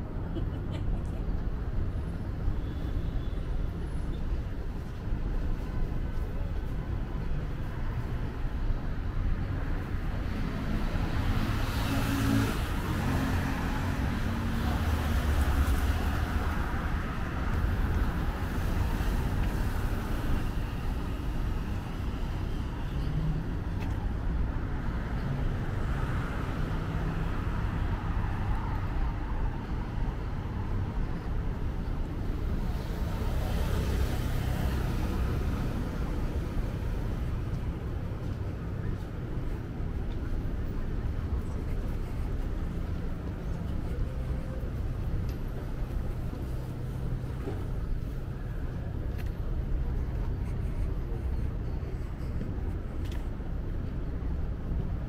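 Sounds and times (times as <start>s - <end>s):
low rumble of traffic: 0.0s - 55.0s.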